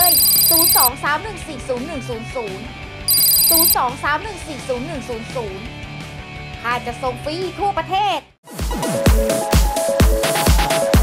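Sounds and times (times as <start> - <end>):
electronic telephone ring: 0.0 - 0.9, 3.1 - 3.8.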